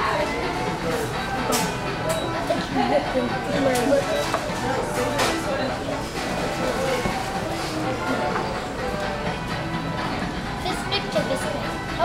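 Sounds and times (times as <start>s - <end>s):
background music: 0.0s - 12.0s
voices and chatter: 0.0s - 12.0s.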